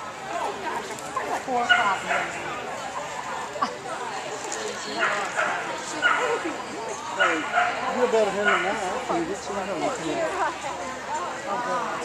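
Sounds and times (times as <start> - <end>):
people's voices: 0.0 - 12.0
dog barking: 1.7 - 2.4, 5.0 - 6.4, 7.2 - 7.8, 8.4 - 8.8.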